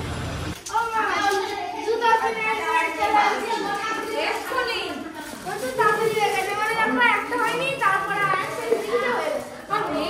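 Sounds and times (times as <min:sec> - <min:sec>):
young boy talking: 0:00.7 - 0:10.0.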